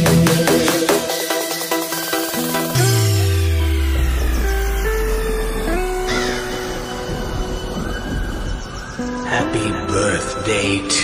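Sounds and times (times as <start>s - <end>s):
steady low bass: 2.7s - 8.8s.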